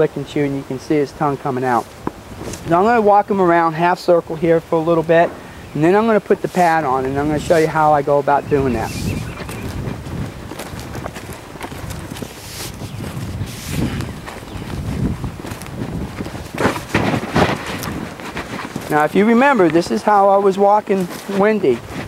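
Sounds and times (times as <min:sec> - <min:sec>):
wind rumbling on microphone: 0:00.0 - 0:22.0
scuffs and rustles: 0:00.6 - 0:22.0
footsteps on grass: 0:01.2 - 0:22.0.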